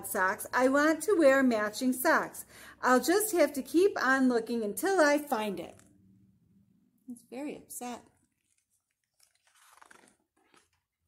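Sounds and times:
book page turning: 0:08.2 - 0:11.0.

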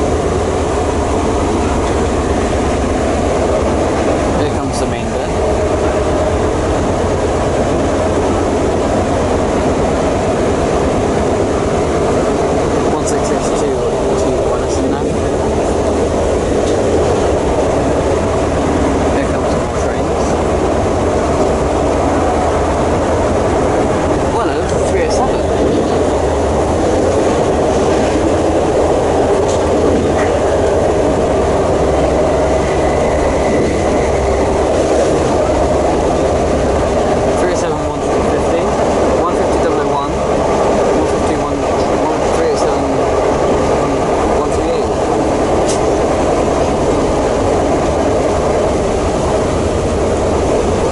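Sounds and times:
train rumbling on track: 0:00.0 - 0:50.9.

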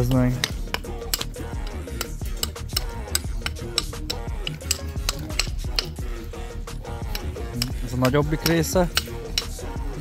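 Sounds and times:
steel bar clanking on wrench: 0:00.0 - 0:06.0, 0:07.1 - 0:09.6.

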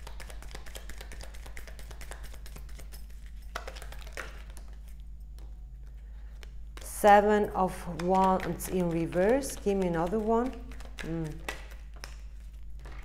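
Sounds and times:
cards being shuffled: 0:00.0 - 0:06.9, 0:07.8 - 0:13.0.

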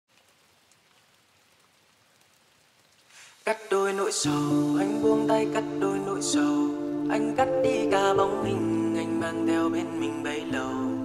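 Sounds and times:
faint rain patter: 0:00.0 - 0:11.0.

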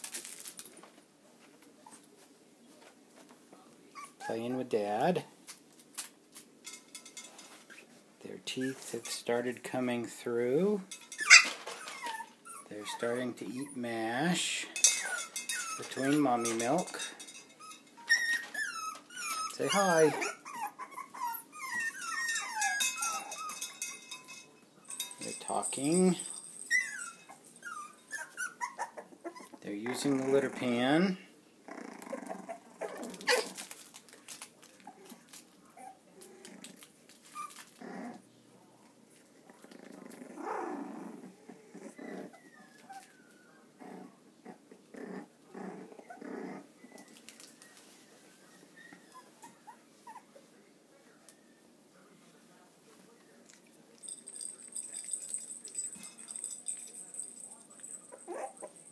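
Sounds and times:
puppy whining: 0:03.9 - 0:04.8, 0:11.0 - 0:30.9, 0:31.6 - 0:33.8, 0:34.7 - 0:38.3, 0:39.5 - 0:50.6, 0:54.0 - 0:58.9.

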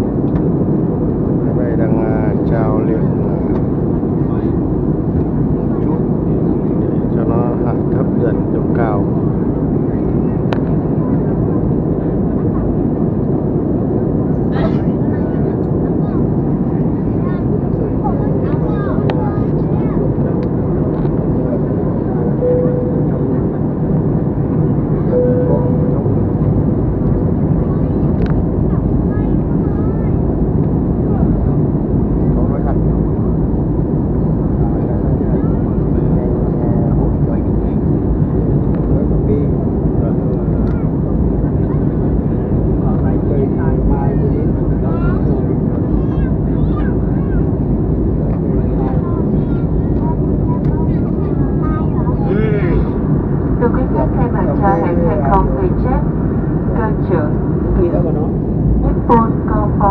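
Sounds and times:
jet airliner cabin roar: 0:00.0 - 0:59.9.

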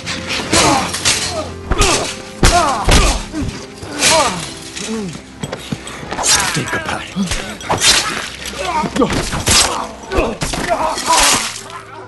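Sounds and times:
man grunting and groaning: 0:00.5 - 0:05.2, 0:06.4 - 0:12.0.

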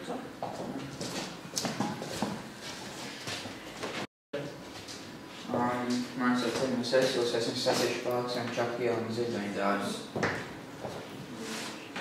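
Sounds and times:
footsteps on hard floor: 0:00.4 - 0:04.1.

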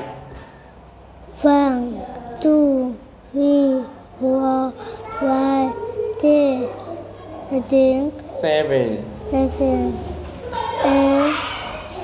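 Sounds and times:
young child counting aloud: 0:01.4 - 0:06.8, 0:07.5 - 0:08.2, 0:09.3 - 0:11.7.

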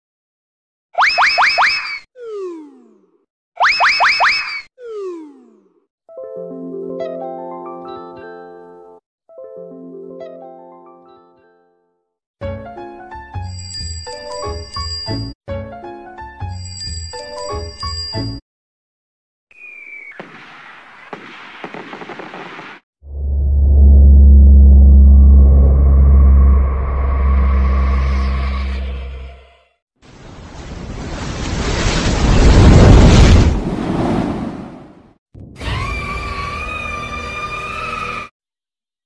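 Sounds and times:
cartoon rising boing sweeps: 0:02.2 - 0:03.2, 0:04.8 - 0:05.8, 0:23.1 - 0:29.3
firework bang: 0:30.6 - 0:34.6.

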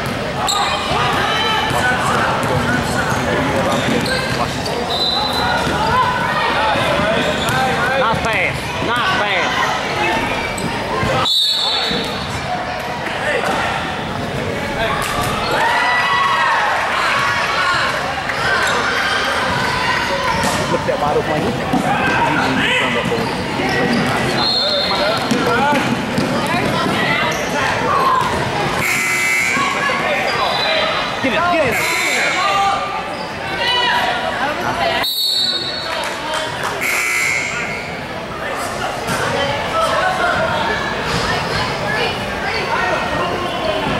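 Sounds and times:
players and spectators talking: 0:00.0 - 0:43.9.

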